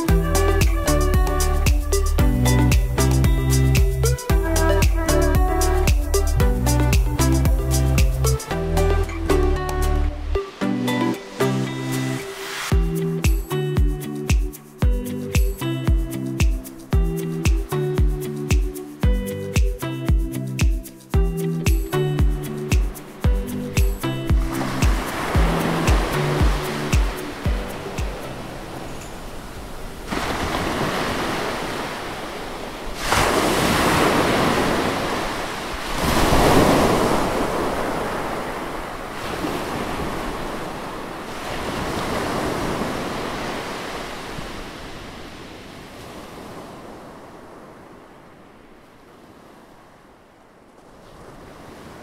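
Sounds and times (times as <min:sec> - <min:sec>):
music with steady beat: 0:00.0 - 0:28.8
waves breaking on a beach: 0:10.2 - 0:52.0.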